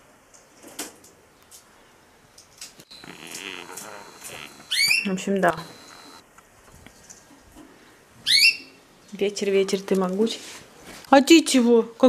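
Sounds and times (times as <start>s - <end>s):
bird chirping: 2.9s - 6.2s.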